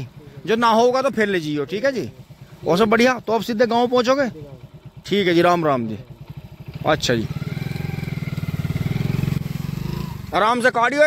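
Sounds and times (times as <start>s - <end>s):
small motorcycle engine running: 0.0s - 11.0s.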